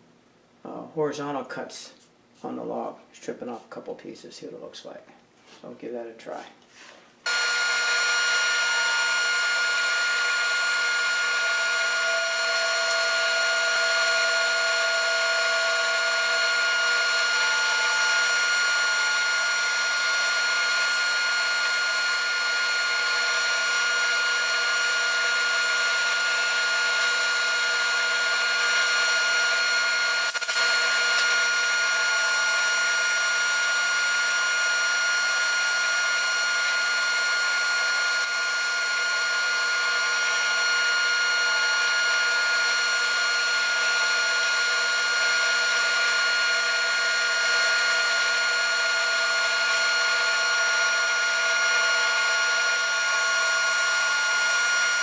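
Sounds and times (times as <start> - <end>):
band saw cutting log: 7.3 - 55.0.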